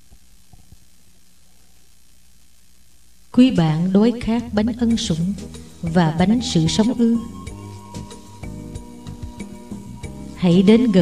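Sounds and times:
recording hiss and hum: 0:00.0 - 0:11.0.

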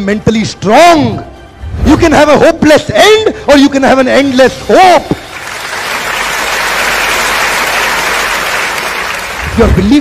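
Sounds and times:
audience applause: 0:05.3 - 0:10.0.

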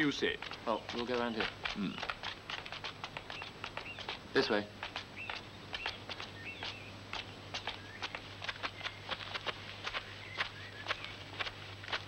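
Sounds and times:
footsteps on stone steps: 0:00.0 - 0:12.0.

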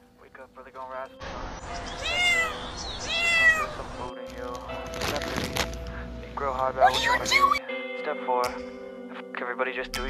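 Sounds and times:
cat meowing: 0:01.8 - 0:03.9.

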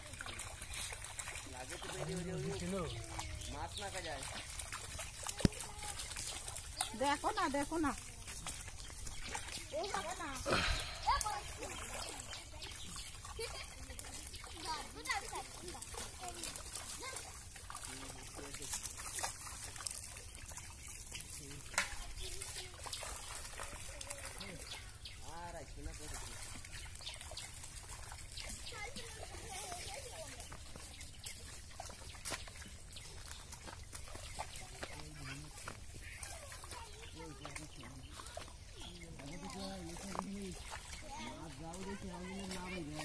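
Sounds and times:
water sloshing and trickling: 0:00.0 - 0:43.0
steady outdoor hiss: 0:09.6 - 0:12.7.

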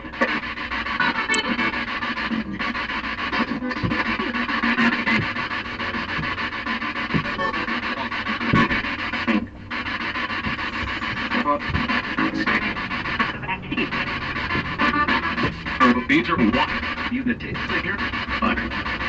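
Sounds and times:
choppy radio static: 0:00.0 - 0:19.0
snatches of radio broadcast: 0:00.0 - 0:19.0.

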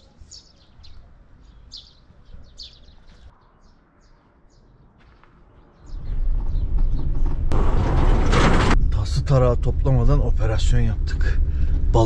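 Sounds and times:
birds chirping: 0:00.0 - 0:07.9
van engine rumble from inside: 0:06.3 - 0:12.0.

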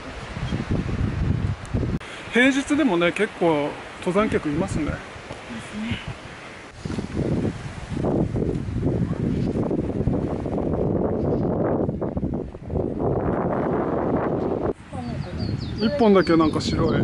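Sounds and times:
wind buffeting microphone: 0:00.0 - 0:02.3, 0:03.2 - 0:17.0.

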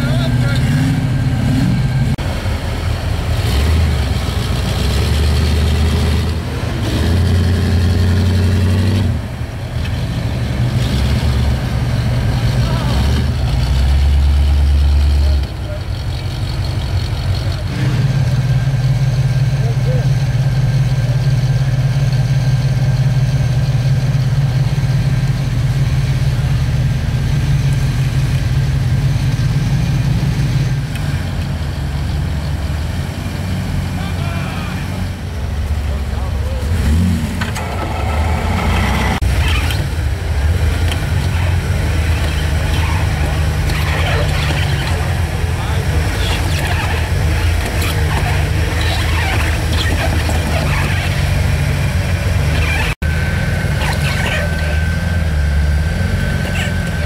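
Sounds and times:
engine revving under load: 0:00.0 - 0:15.8, 0:17.4 - 0:22.6, 0:25.8 - 0:57.0.

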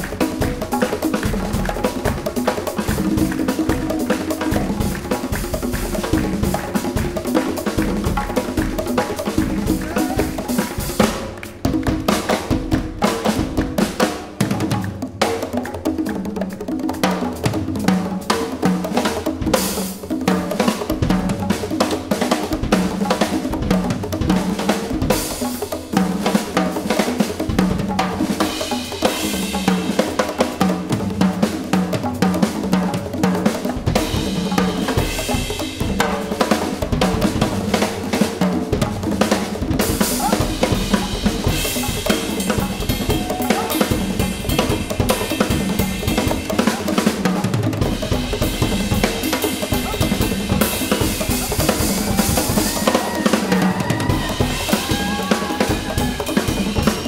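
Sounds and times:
congas: 0:00.0 - 0:57.0
djembes: 0:00.0 - 0:57.0
drum kit: 0:00.0 - 0:57.0.

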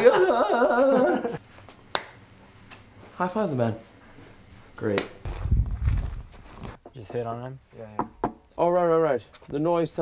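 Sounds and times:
hand slap high five: 0:01.9 - 0:02.2.

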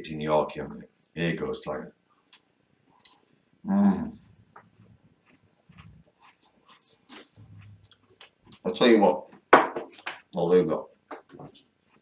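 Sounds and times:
faint chewing: 0:04.1 - 0:08.9.

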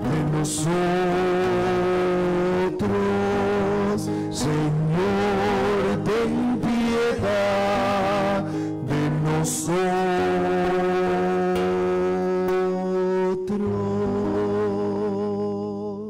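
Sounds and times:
voice singing long notes: 0:00.0 - 0:16.0.

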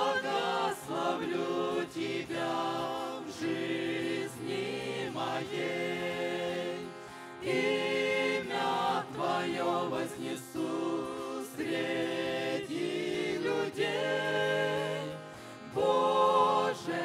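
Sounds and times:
acoustic guitar: 0:00.0 - 0:17.0
mixed group singing in harmony: 0:00.0 - 0:17.0.

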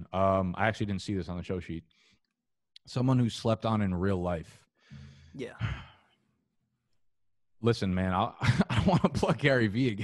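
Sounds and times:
man sighing yeah: 0:04.9 - 0:06.1.

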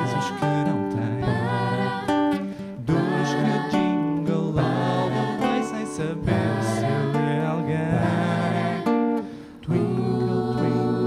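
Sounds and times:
nylon-string classical guitar: 0:00.0 - 0:11.0
vocal ensemble singing in harmony: 0:00.0 - 0:11.0.

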